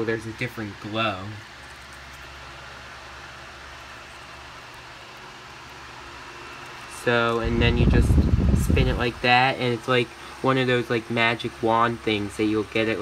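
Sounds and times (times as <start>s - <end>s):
electric fan whirring: 0.0s - 13.0s.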